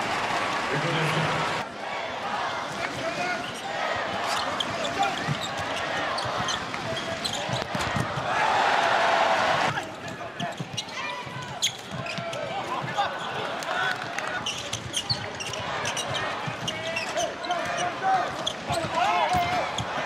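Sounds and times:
arena crowd: 0.0s - 20.0s
players' voices: 0.2s - 20.0s
shoes squeaking on court: 3.4s - 8.1s, 10.1s - 13.4s, 14.4s - 20.0s
ball bouncing on court floor: 5.2s - 8.3s, 10.5s - 13.0s, 14.7s - 20.0s.

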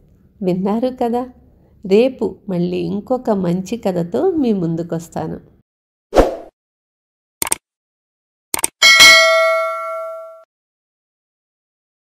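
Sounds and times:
notification bell ding: 8.8s - 10.5s.

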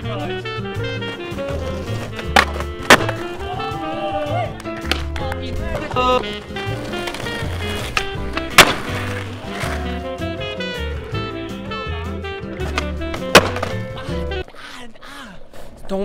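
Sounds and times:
skateboard cracking on concrete: 1.2s - 3.7s, 4.6s - 10.2s, 12.5s - 14.0s.

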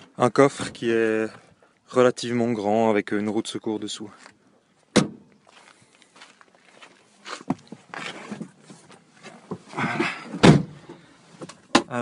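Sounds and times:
footsteps: 4.1s - 9.8s
car boot lid banging shut: 4.9s - 5.2s, 10.3s - 10.8s
car door closing thump: 4.9s - 5.2s, 10.4s - 10.8s.

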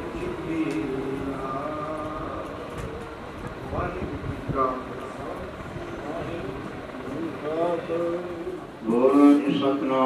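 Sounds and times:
steady low rumble: 0.0s - 9.8s
faint indistinct voices: 0.0s - 10.0s.

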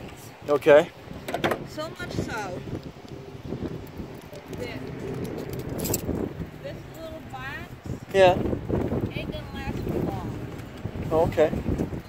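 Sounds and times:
man talking: 0.5s - 0.9s.

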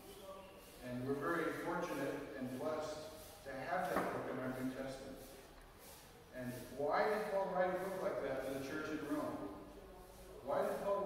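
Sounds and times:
man speaking: 0.8s - 5.2s, 6.4s - 11.0s.

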